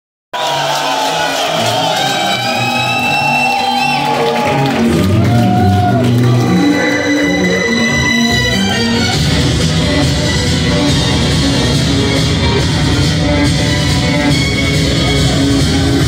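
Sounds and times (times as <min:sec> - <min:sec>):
crowd shouting and cheering: 0:00.3 - 0:16.0
loud live music: 0:00.4 - 0:16.0.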